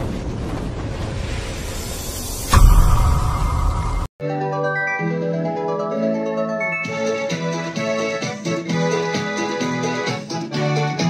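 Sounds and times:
loud hit: 0.0s - 4.2s
cinematic music: 2.4s - 8.0s.

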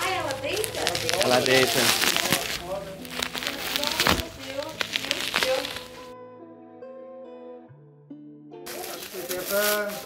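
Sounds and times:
plastic wrapping crinkling: 0.0s - 6.2s, 8.7s - 10.0s.

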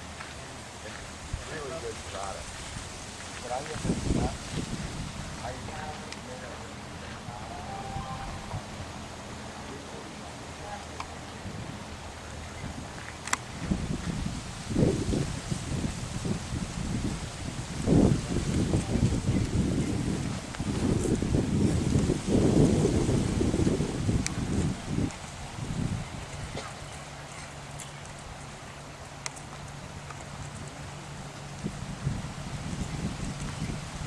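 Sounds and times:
wind buffeting microphone: 0.9s - 9.4s, 11.0s - 34.0s.

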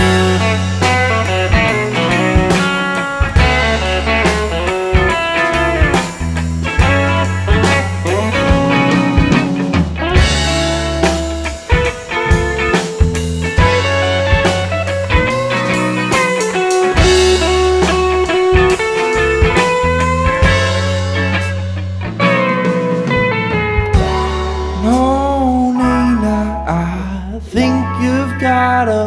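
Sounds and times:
drum kit steady beat: 0.0s - 26.0s
bass guitar: 0.0s - 29.0s
electric guitar lead line: 0.0s - 29.0s
electric guitars: 0.0s - 29.0s.

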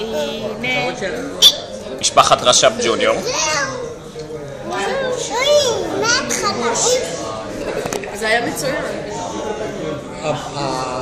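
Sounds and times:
young child speaking: 3.2s - 3.9s, 5.0s - 7.3s.

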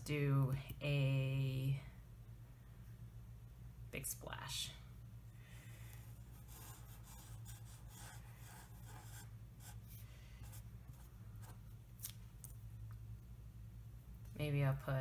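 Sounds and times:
steady low hum: 0.0s - 15.0s
marker scratching on paper: 6.2s - 11.6s.

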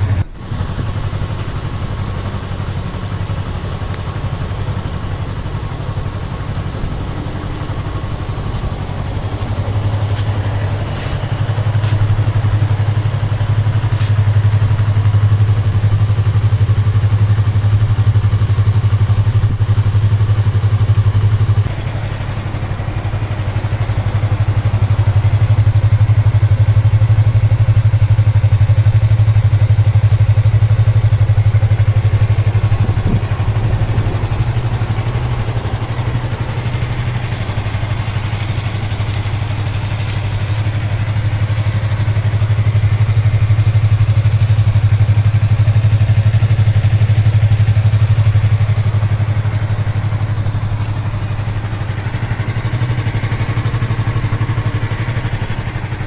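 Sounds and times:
motorcycle engine idling: 0.0s - 56.0s.

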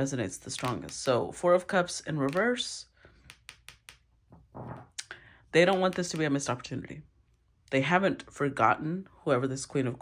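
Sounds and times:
hands handling cards clicking: 0.5s - 1.2s, 2.2s - 2.5s, 5.7s - 6.3s.

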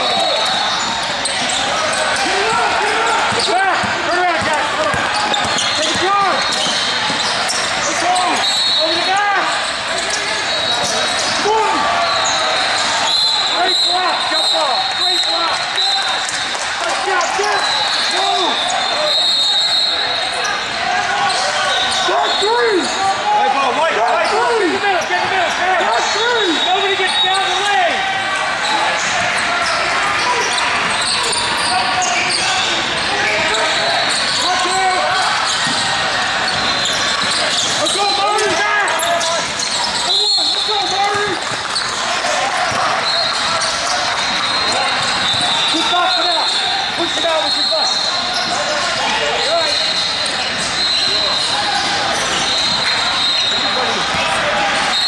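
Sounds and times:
sneakers squeaking: 0.0s - 23.2s, 24.0s - 55.0s
hubbub of voices: 0.0s - 55.0s
basketball bouncing: 2.4s - 7.3s.

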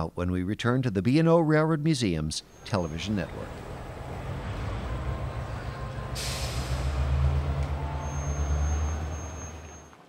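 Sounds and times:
train locomotive idling: 2.5s - 10.0s
air hissing: 5.5s - 7.4s.

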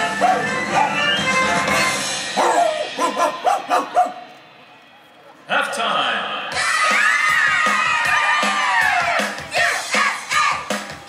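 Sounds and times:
show music: 0.0s - 4.7s, 6.2s - 11.0s
cartoon dog barking: 2.4s - 4.2s.

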